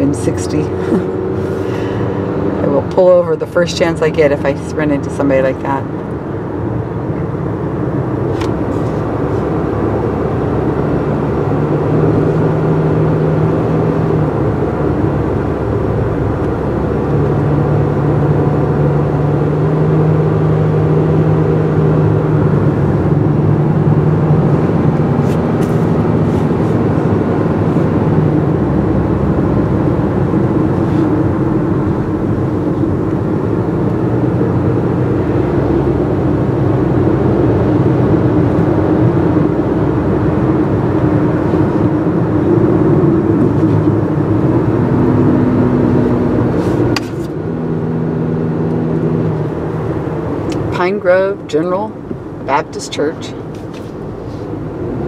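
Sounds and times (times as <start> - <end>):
car engine hum: 0.0 - 55.0
road noise: 0.0 - 55.0.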